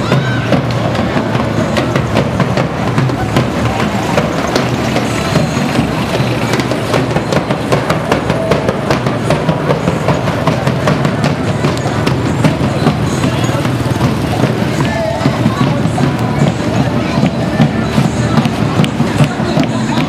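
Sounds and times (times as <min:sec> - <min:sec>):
crowd voices: 0:00.0 - 0:20.0
percussion beating rapid rhythm: 0:00.0 - 0:20.0
vehicles passing: 0:00.0 - 0:20.0.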